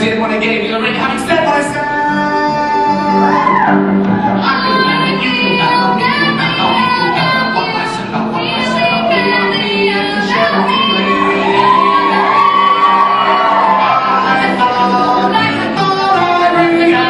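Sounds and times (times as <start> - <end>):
woman singing into a microphone: 4.4 - 17.0.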